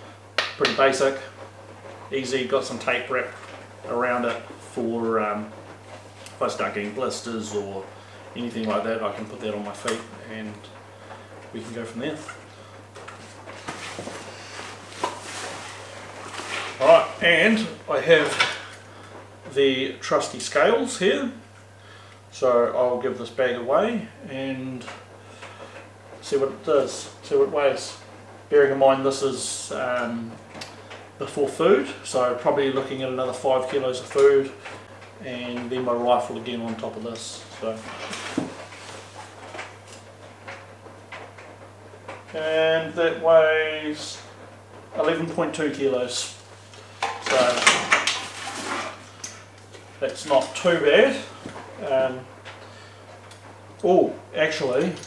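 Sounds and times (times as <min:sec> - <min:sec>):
low steady hum: 0:00.0 - 0:55.0
soft scrapes: 0:13.2 - 0:16.8.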